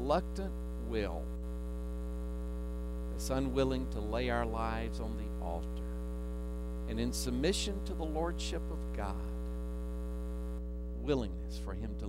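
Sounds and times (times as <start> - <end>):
electrical mains hum: 0.0 - 12.0
faint hiss: 0.0 - 12.0.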